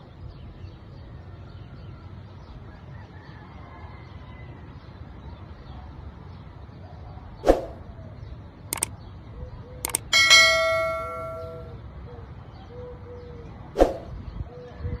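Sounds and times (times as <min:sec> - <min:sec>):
short swish: 0:07.4 - 0:07.8, 0:13.8 - 0:14.1
clicks: 0:08.7 - 0:08.9, 0:09.8 - 0:11.7
bell ding: 0:09.9 - 0:11.8.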